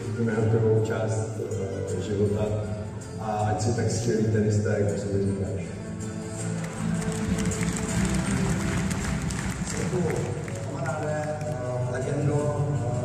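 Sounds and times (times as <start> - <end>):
man speaking over loudspeakers: 0.0 - 6.0, 9.6 - 13.0
background music over loudspeakers: 0.0 - 13.0.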